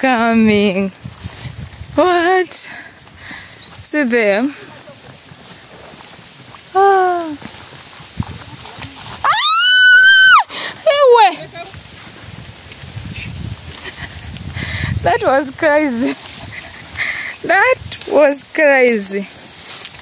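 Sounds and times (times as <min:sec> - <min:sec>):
falling cry: 0:09.2 - 0:10.5
woman screaming: 0:09.2 - 0:11.1.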